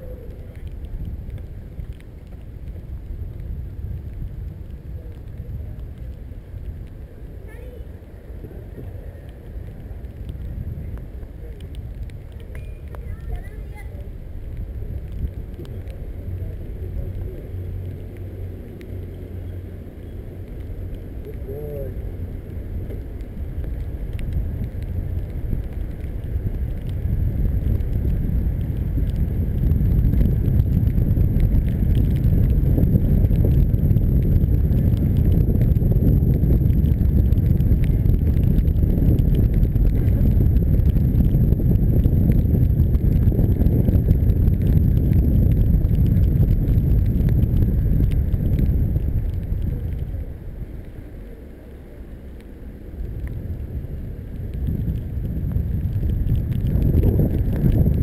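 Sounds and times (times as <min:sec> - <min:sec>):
tyres hissing on wet road: 0:00.0 - 0:58.0
wind buffeting microphone: 0:00.0 - 0:58.0.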